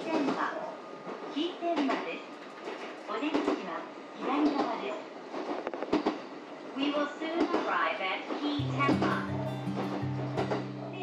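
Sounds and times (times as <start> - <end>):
train running inside carriage: 0.0 - 11.0.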